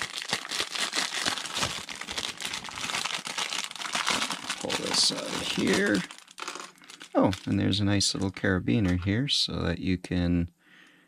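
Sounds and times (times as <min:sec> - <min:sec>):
plastic bag crinkling: 0:00.0 - 0:09.1.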